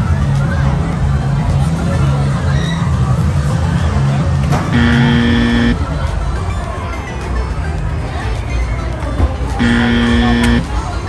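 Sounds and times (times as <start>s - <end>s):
electronic buzzer: 4.7s - 5.8s, 9.6s - 10.7s
fairground music with heavy bass: 4.7s - 5.8s, 9.6s - 10.7s.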